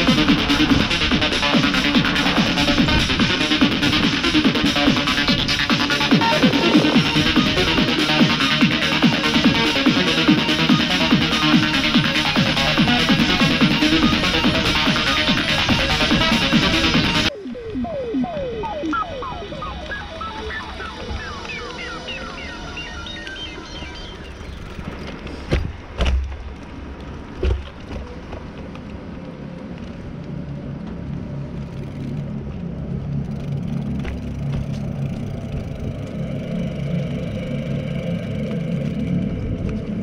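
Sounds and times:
bicycle wheels rolling rumble: 0.0s - 40.0s
wheels thumping over bumps: 24.3s - 30.0s, 33.3s - 35.9s.

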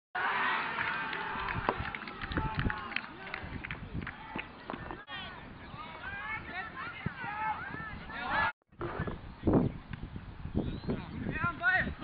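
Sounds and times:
players running on field: 0.7s - 8.5s.

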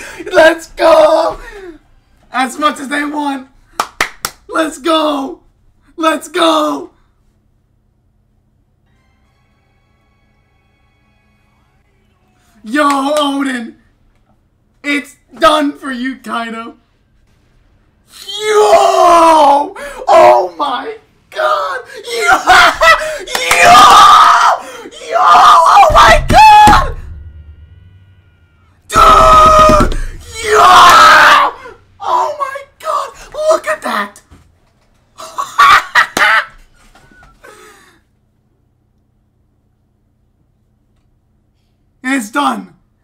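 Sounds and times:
man yelling: 0.2s - 1.8s, 4.5s - 5.4s, 6.0s - 7.0s, 12.6s - 13.8s, 18.1s - 27.0s, 28.9s - 34.2s
man crying out: 18.1s - 27.0s, 28.9s - 33.7s, 35.2s - 36.5s
man screaming with excitement: 22.1s - 27.0s, 28.9s - 32.3s.

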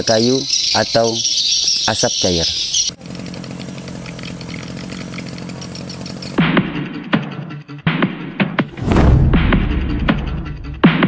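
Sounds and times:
small engine running: 0.2s - 7.3s
music with deep hit: 7.9s - 11.0s.

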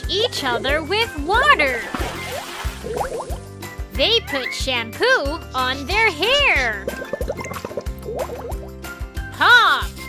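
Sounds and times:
light children's music: 0.0s - 10.0s
cartoon bubble bloops: 2.2s - 3.4s, 6.8s - 8.7s.

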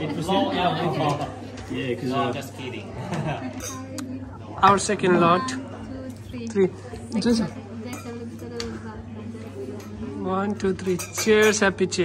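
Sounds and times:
low voices of small group: 0.0s - 12.0s.

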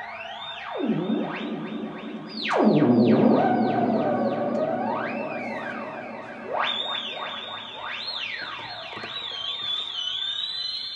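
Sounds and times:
swooping synthesizer music: 0.1s - 9.5s.

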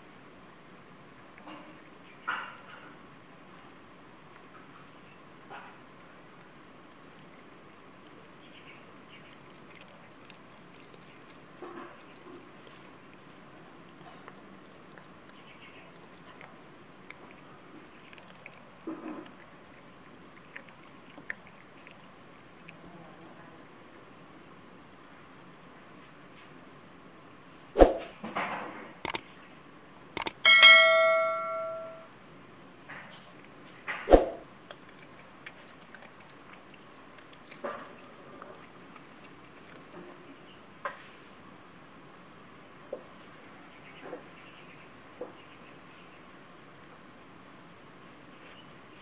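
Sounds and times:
cat chewing clicks: 30.2s - 30.4s, 34.6s - 39.9s
bell ding: 30.4s - 32.1s.

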